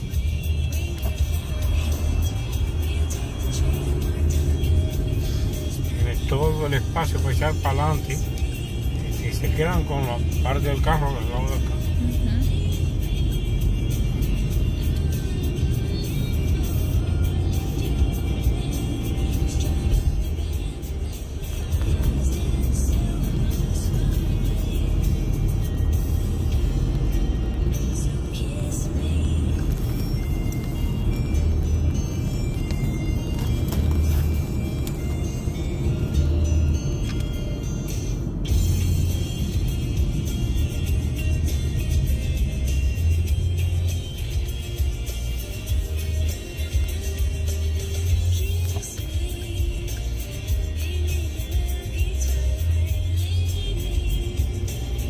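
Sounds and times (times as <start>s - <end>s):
music on car stereo: 0.0s - 55.0s
road noise rumble: 0.0s - 55.0s.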